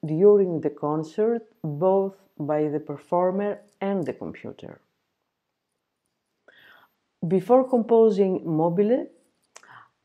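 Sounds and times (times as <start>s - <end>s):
faint intake of breath: 6.5s - 7.0s.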